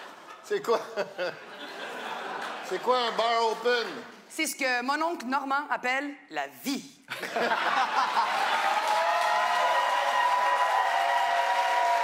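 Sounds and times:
audience laughing: 0:00.0 - 0:03.3, 0:07.1 - 0:08.8
audience applauding: 0:08.0 - 0:12.0.

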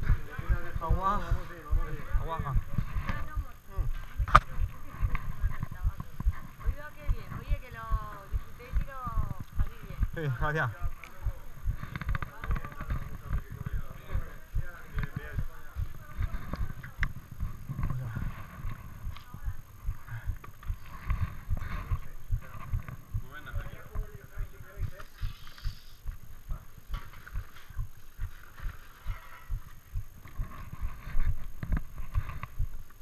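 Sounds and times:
camera rustling: 0:10.9 - 0:33.0.

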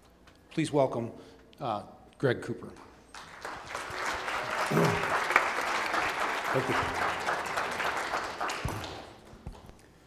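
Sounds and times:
audience applause: 0:03.1 - 0:09.6.

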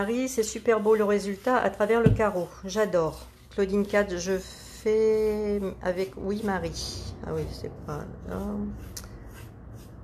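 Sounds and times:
paintbrush swishing on wood: 0:00.0 - 0:10.0.

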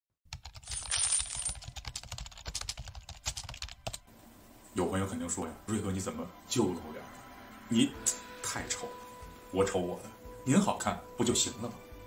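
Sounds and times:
keyboard typing: 0:00.3 - 0:04.0.

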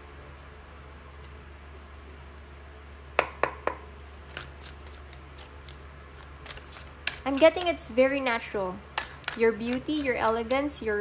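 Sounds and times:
cards being shuffled: 0:04.1 - 0:07.8.

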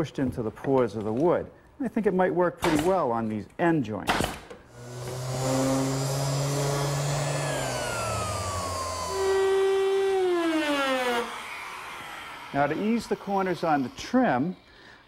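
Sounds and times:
pneumatic nailer shot: 0:04.1 - 0:12.4
trimmer router running on wood: 0:04.7 - 0:14.8.

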